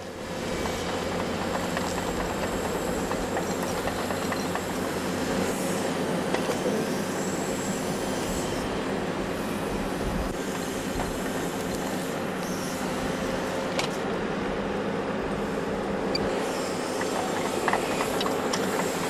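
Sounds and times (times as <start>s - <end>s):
excavator engine and hydraulics: 0.0s - 19.0s.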